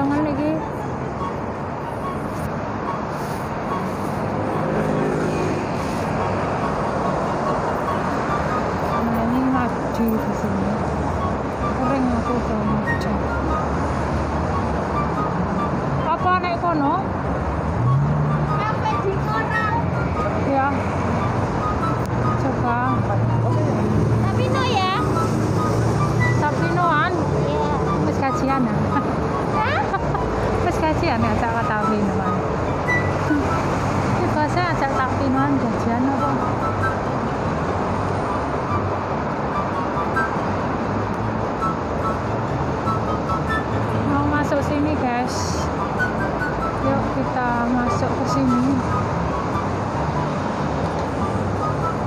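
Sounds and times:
passers-by talking: 0.0s - 6.5s, 8.8s - 13.9s, 18.1s - 38.2s, 43.0s - 49.6s
passing traffic hum: 0.0s - 52.0s.

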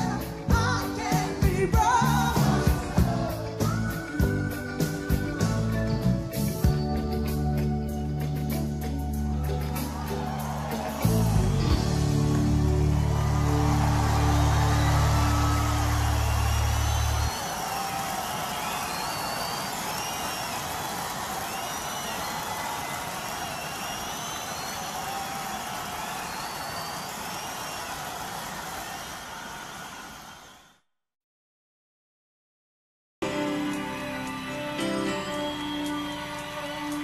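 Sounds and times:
whistles and cheers: 3.6s - 6.8s, 9.1s - 30.9s, 33.5s - 37.0s
audience applause: 9.4s - 30.8s, 33.6s - 37.0s.

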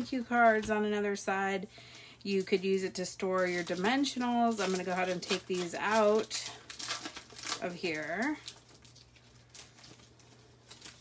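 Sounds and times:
plastic bag rustling: 1.7s - 11.0s.

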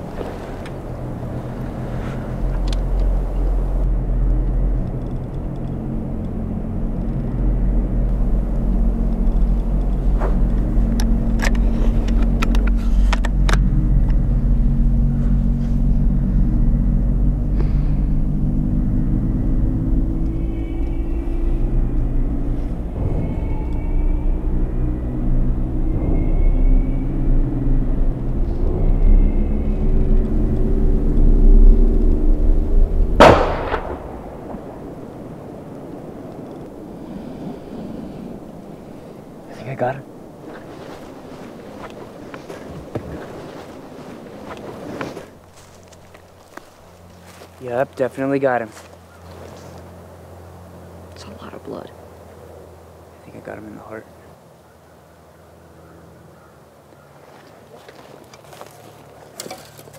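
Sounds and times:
low rumbling drone: 0.0s - 59.9s
rifle shot: 33.2s - 34.8s.

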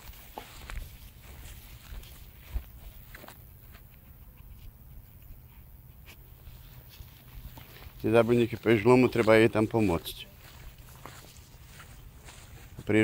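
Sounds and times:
footsteps in grass: 0.0s - 13.0s.

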